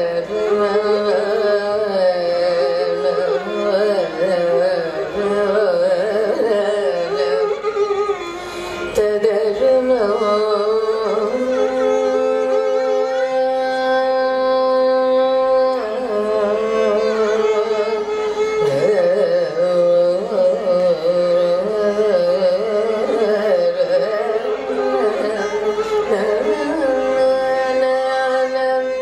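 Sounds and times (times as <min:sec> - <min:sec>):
woman singing: 0:00.0 - 0:08.0, 0:09.0 - 0:29.0
violin accompaniment: 0:00.0 - 0:29.0.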